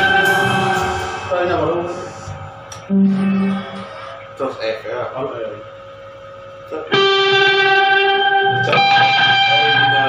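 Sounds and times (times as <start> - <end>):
band chord ringing out: 0.0 - 4.0, 6.9 - 10.0.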